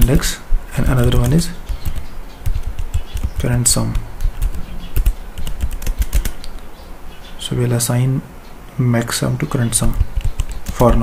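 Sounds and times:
computer keyboard typing: 0.9s - 6.4s, 9.9s - 11.0s.

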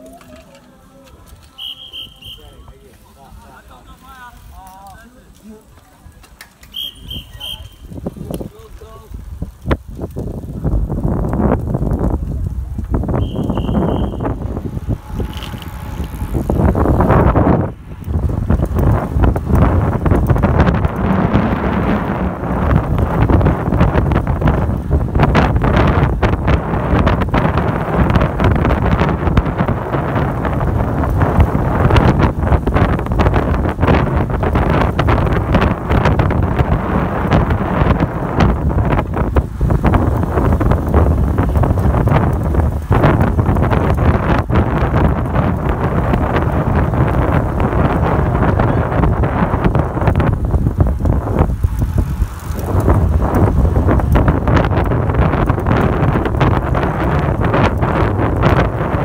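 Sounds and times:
wind rushing over microphone: 1.2s - 59.0s.

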